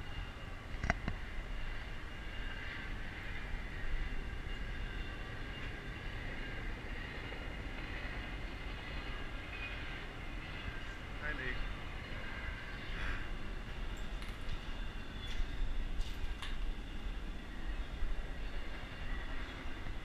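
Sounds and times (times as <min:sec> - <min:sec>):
distant freight train rumble: 0:00.0 - 0:20.0.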